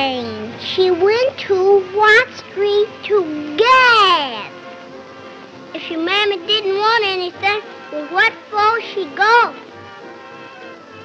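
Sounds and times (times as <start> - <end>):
young child singing: 0.0 - 4.5, 5.8 - 9.6.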